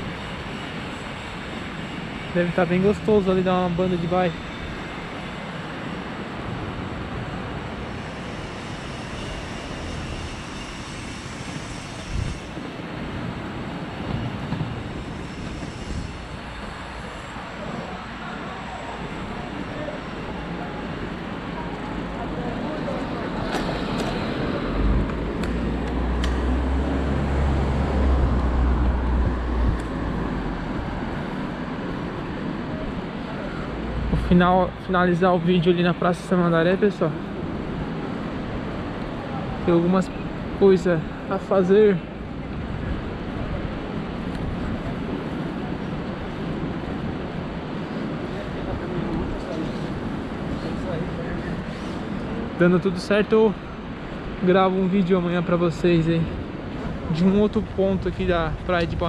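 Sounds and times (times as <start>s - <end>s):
wind noise on microphone: 7.1s - 17.2s, 23.6s - 32.2s.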